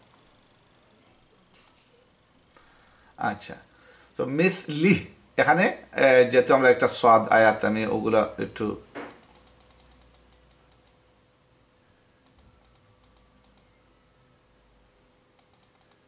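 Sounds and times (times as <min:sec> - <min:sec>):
computer keys clicking: 0:09.1 - 0:11.0, 0:12.2 - 0:13.7, 0:15.4 - 0:16.0.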